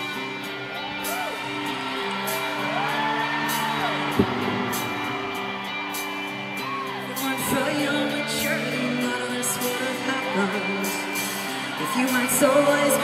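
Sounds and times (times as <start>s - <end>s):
audience whooping: 0.0s - 8.1s.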